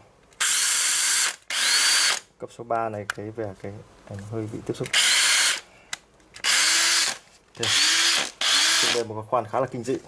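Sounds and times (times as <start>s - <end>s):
cordless drill whirring: 0.4s - 2.3s, 4.9s - 5.6s, 6.4s - 9.1s.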